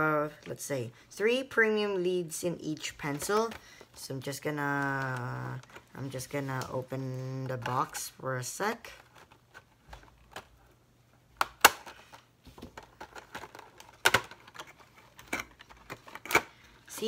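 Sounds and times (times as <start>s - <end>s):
packaging clicks and snaps: 12.8s - 16.6s.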